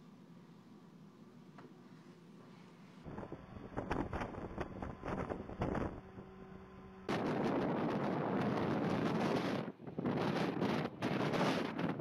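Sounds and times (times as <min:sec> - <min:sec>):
wind buffeting microphone: 0:03.1 - 0:06.5, 0:07.1 - 0:12.0.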